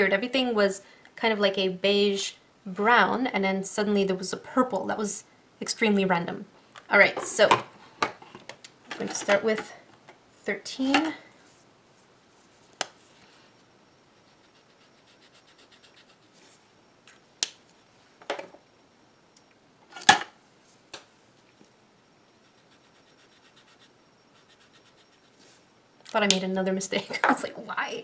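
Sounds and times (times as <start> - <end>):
markers scratching on paper: 14.2 - 16.6, 22.4 - 25.6.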